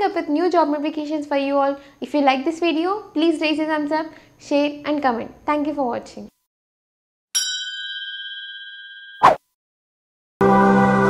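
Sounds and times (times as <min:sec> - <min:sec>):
notification bell chime: 0:07.4 - 0:09.3.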